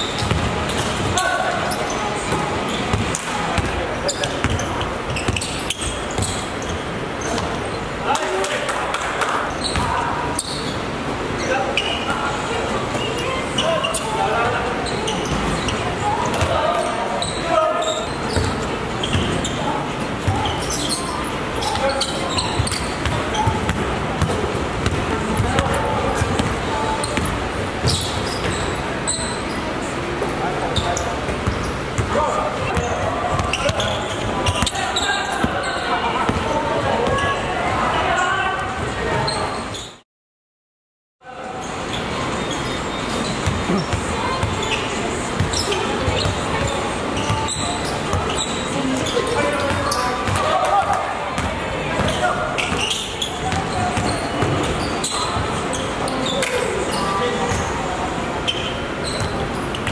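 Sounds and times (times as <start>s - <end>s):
basketball bouncing on court: 0.2s - 1.2s, 2.3s - 7.6s, 18.3s - 19.5s, 22.4s - 28.7s, 31.2s - 37.3s, 43.4s - 44.7s, 49.7s - 55.5s.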